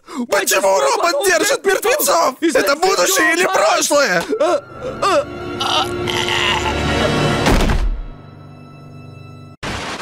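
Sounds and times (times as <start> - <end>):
ominous dramatic music: 2.7 - 9.6.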